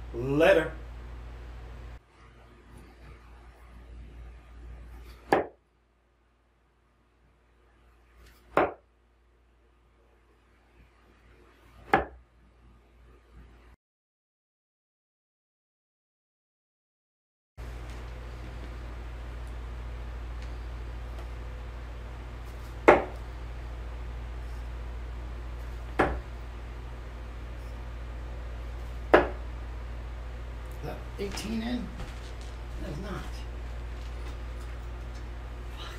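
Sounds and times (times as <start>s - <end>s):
darts thudding into dartboard: 5.1s - 5.6s, 8.3s - 8.8s, 11.8s - 12.2s, 22.7s - 23.2s, 25.9s - 26.3s, 29.1s - 29.4s.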